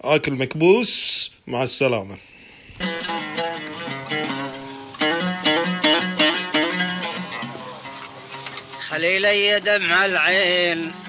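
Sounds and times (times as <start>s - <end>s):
plucked string instrument melody: 2.8s - 11.0s.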